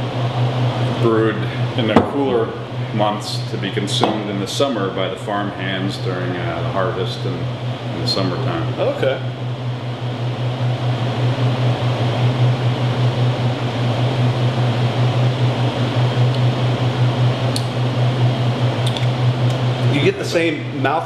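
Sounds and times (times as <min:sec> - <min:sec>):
mechanical hum with rushing air: 0:00.0 - 0:21.0.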